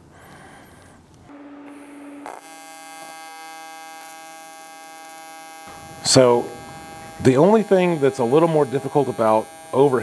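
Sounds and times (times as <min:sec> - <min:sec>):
welding arc buzzing: 0:01.2 - 0:10.0.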